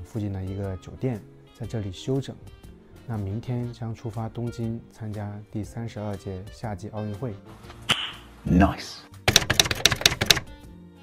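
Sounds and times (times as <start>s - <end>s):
fast run of sharp clicks: 9.3s - 10.5s.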